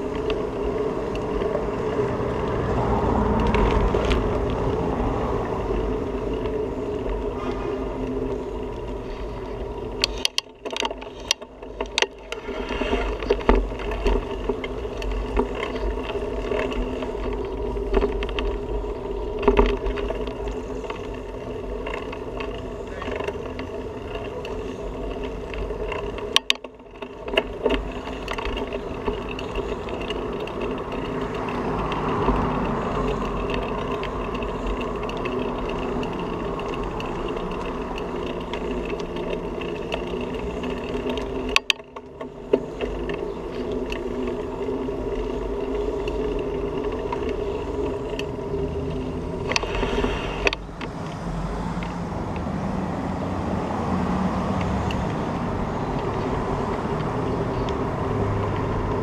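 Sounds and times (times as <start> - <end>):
bicycle rolling on concrete: 0.0 - 59.0.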